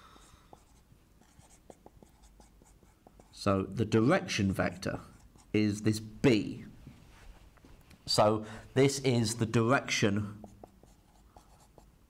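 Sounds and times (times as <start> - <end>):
marker pen writing on whiteboard: 0.5 - 3.5, 10.2 - 11.9.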